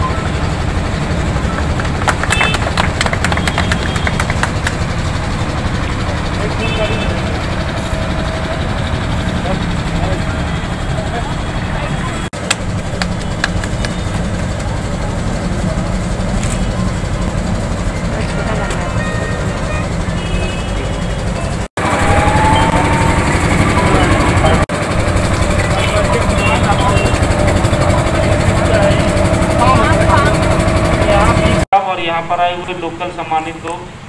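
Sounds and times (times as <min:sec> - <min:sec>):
indistinct crowd voices: 0:00.0 - 0:31.6
loud low rumble: 0:04.5 - 0:31.6
steady hum: 0:12.3 - 0:18.2, 0:21.8 - 0:31.6.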